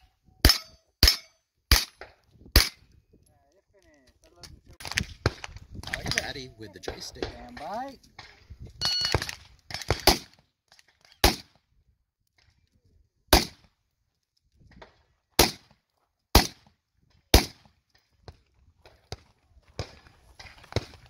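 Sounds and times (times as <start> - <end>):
carbine gunshots: 0.4 - 2.8, 4.8 - 10.4, 11.2 - 11.6, 13.3 - 13.7, 15.4 - 16.7, 17.3 - 17.7.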